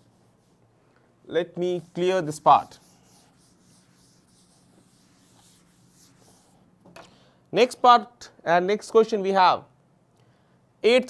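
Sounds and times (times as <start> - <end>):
duster wiping chalkboard: 0.0 - 0.6, 1.4 - 6.6.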